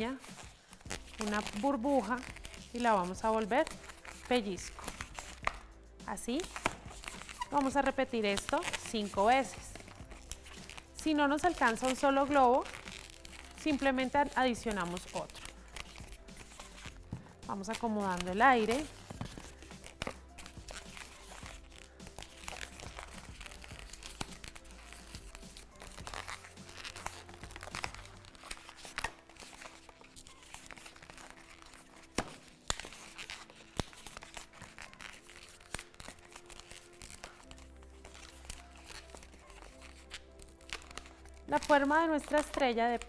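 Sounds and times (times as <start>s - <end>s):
balloon squeaking and crinkling: 0.0s - 43.0s
soft background music: 0.0s - 43.0s.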